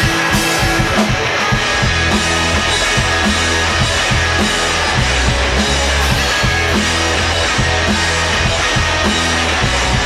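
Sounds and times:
bass guitar line: 0.0s - 10.0s
drum kit with cymbals: 0.0s - 10.0s
electric guitars: 0.0s - 10.0s.

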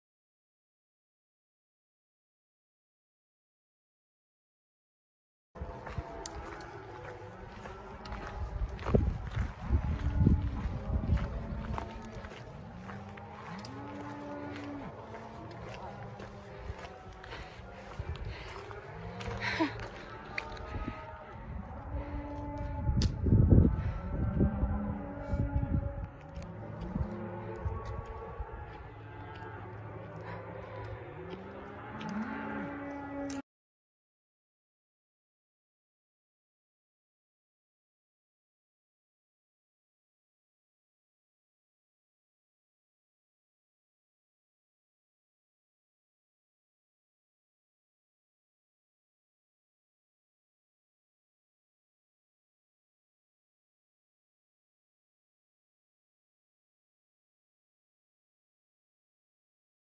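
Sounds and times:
footsteps through tall grass: 5.6s - 21.0s
cows mooing: 5.6s - 33.4s.

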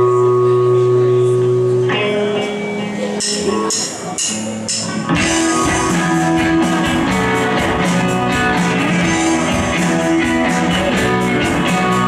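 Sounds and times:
electric guitar chord ringing: 0.0s - 12.0s.

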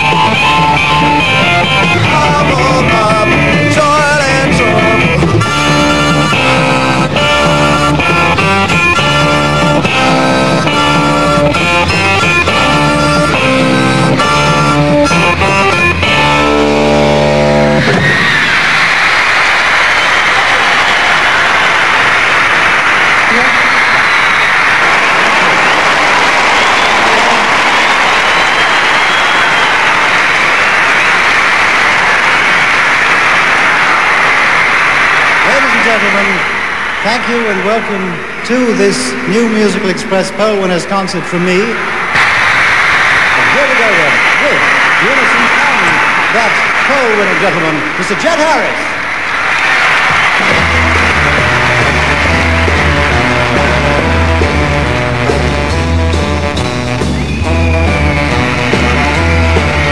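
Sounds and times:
beat group with guitars and harmonica: 0.0s - 18.5s, 50.1s - 59.9s
crowd screaming and cheering: 0.0s - 59.9s.

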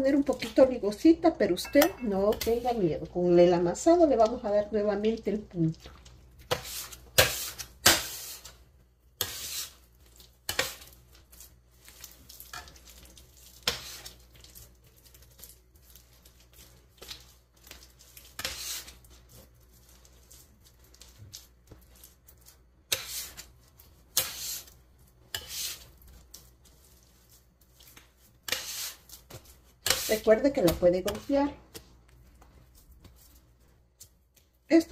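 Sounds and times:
dough slapping and squishing: 2.2s - 34.9s
dough scraper scraping table: 9.2s - 9.8s, 18.4s - 19.0s, 22.9s - 23.5s, 24.1s - 24.7s, 25.3s - 25.9s, 28.4s - 31.5s.

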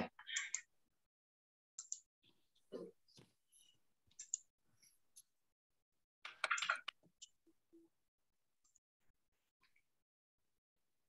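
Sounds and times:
computer mouse clicks: 1.8s - 2.1s, 4.1s - 4.5s.

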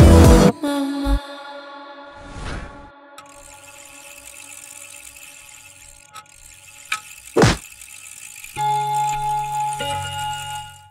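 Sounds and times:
faint clicks: 3.2s - 9.4s.

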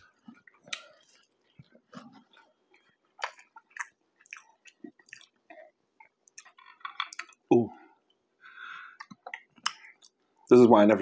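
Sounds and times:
man chewing food: 0.0s - 10.4s.

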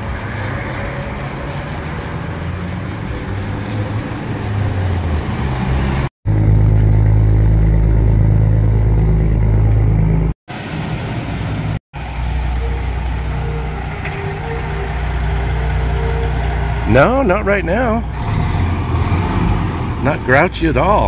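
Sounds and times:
vehicle engine rumbling: 0.0s - 21.0s.

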